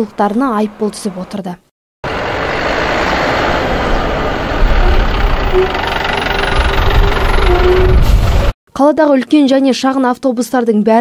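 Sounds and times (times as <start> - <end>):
minibus engine running: 2.0 - 8.5
road traffic noise: 2.0 - 8.5.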